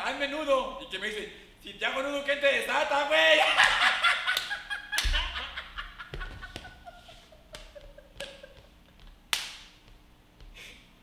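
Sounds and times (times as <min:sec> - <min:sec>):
people laughing: 0:03.4 - 0:09.0
sharp smacks: 0:09.3 - 0:10.0.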